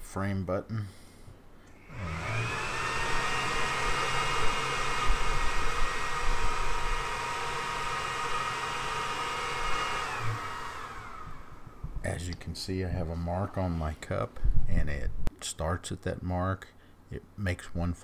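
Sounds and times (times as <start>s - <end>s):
stepper motor whine: 1.8s - 11.8s.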